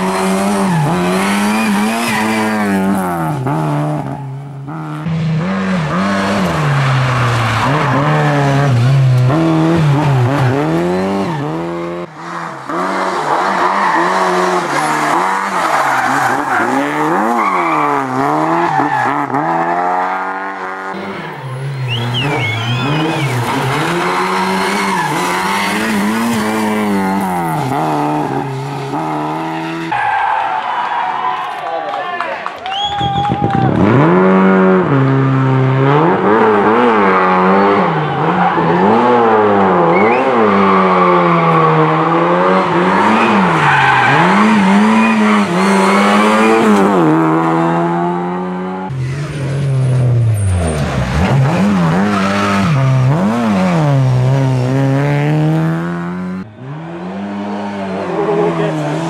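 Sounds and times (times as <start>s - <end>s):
rally car engine revving: 0.0s - 30.3s, 33.6s - 59.0s.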